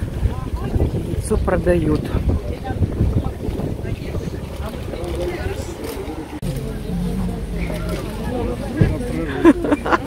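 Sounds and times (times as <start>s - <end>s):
wind buffeting microphone: 0.0s - 9.2s
faint crowd chatter: 0.0s - 10.0s.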